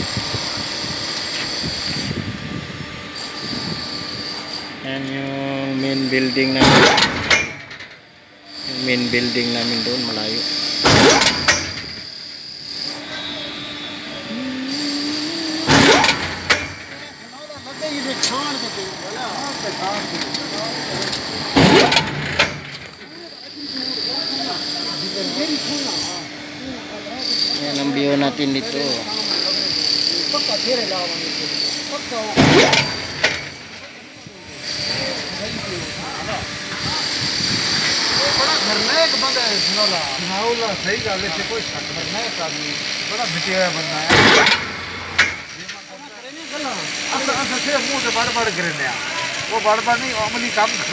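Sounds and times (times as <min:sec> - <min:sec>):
hoist machinery high whine: 0:00.0 - 0:50.9
indistinct voices talking: 0:04.7 - 0:50.9
low rising tone: 0:13.9 - 0:17.0.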